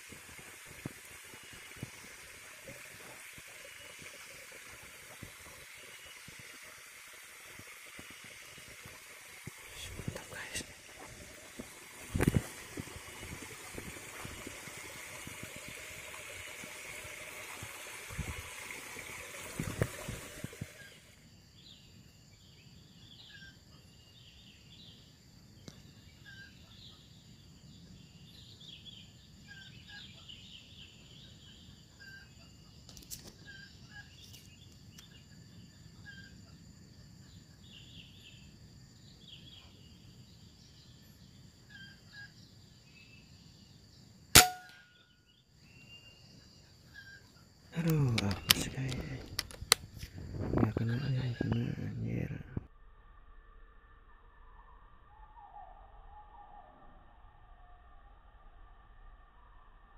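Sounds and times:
stream running over rocks: 0:00.0 - 0:21.2, 0:47.7 - 0:50.8
air rifle shot: 0:44.4 - 0:44.8.

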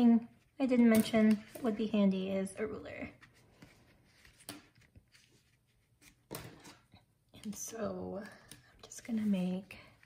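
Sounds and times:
paper rustling: 0:03.0 - 0:07.0.

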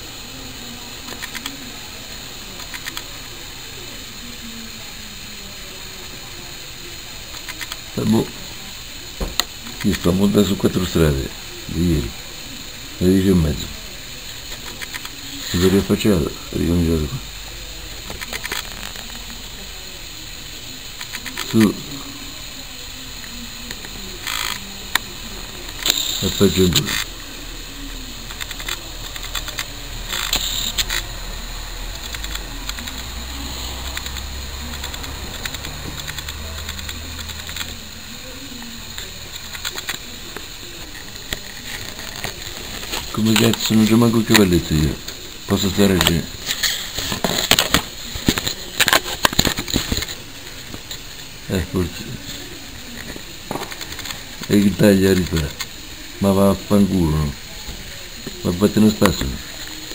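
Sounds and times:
outdoor hiss: 0:00.0 - 0:59.9.

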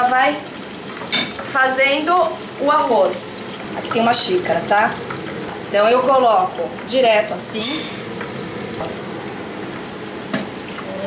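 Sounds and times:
oil sizzling in frying pan: 0:00.0 - 0:11.0.

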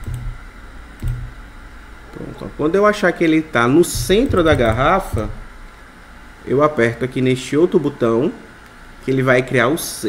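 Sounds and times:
stepper motors humming: 0:00.0 - 0:06.4.

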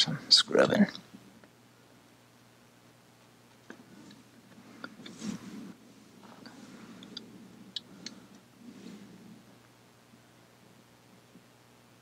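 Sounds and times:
soft rustling: 0:03.2 - 0:10.3.

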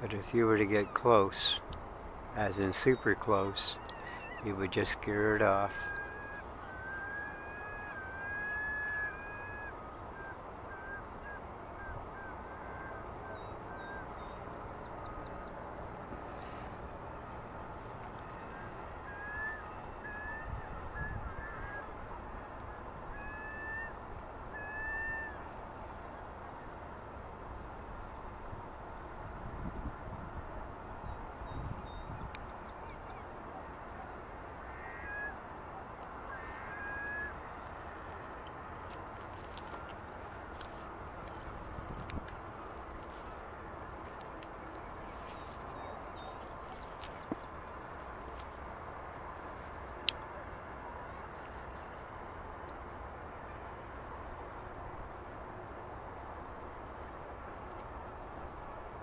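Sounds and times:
distant bird calls: 0:00.0 - 0:29.2, 0:30.8 - 0:54.3
steady background hiss: 0:00.0 - 0:59.0.

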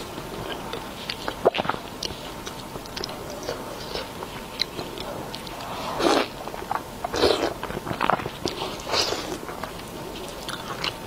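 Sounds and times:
person biting and chewing food: 0:00.0 - 0:11.0.

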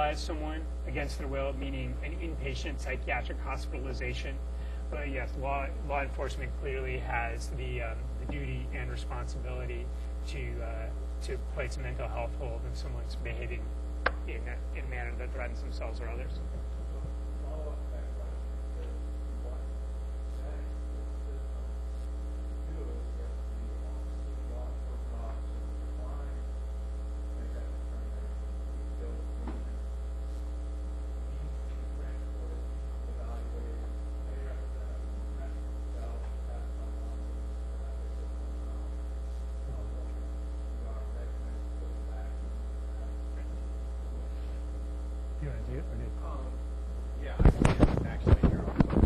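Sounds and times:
low electrical mains hum: 0:00.0 - 0:49.0.

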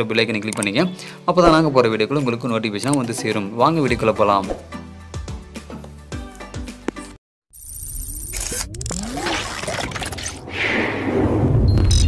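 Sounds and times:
noisy whoosh: 0:08.9 - 0:12.0.

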